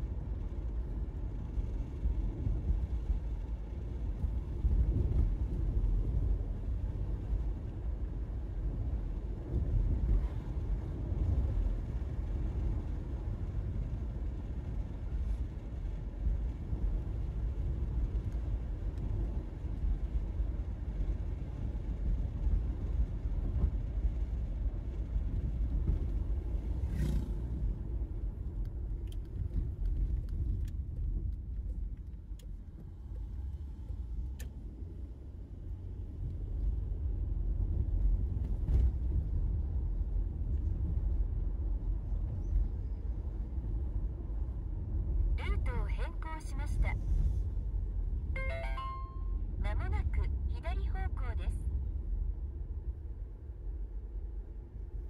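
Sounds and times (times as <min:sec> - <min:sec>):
car engine and tyre rumble: 0:00.0 - 0:55.0.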